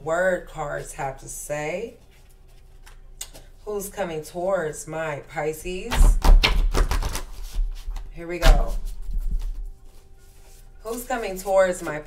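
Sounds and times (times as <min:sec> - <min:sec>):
cards shuffling: 0:02.0 - 0:03.5, 0:06.0 - 0:12.0.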